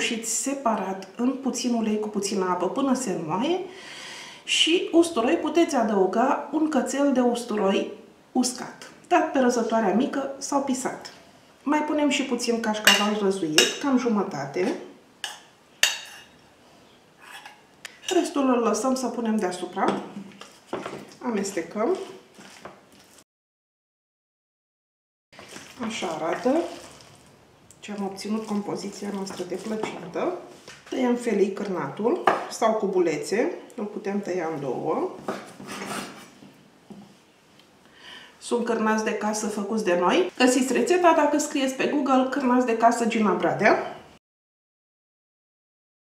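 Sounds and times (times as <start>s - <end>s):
spoon scraping bowl: 17.2s - 18.4s, 35.5s - 36.4s.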